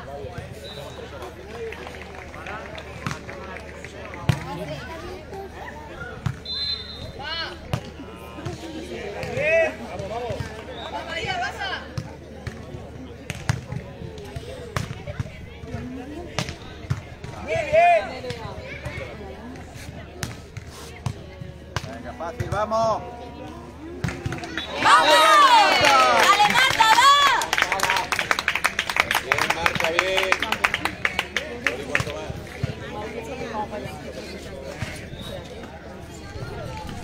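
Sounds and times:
people shouting: 24.6 - 27.4.

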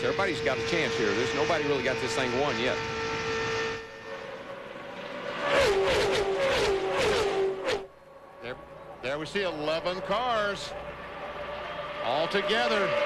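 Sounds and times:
race car engine at full throttle: 0.0 - 13.0
race cars passing by: 0.0 - 13.0.

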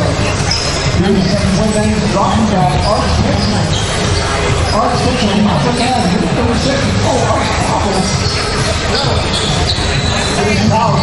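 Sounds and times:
room chatter echoing: 0.0 - 11.0.

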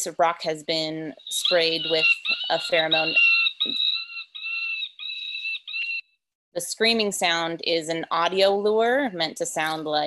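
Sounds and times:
high-pitched deer distress screams: 1.2 - 6.1.

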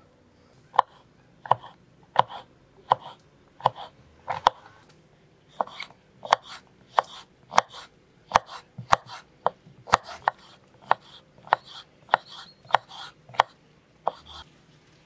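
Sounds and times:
knife slicing pepper: 0.8 - 4.6, 5.6 - 9.3, 9.9 - 14.4.

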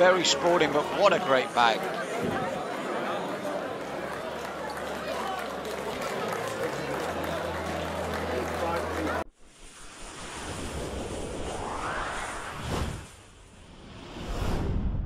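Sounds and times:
crowd chatter in a hall: 0.0 - 9.3
rising whoosh: 9.4 - 15.0
sharp swoosh: 9.4 - 15.0.

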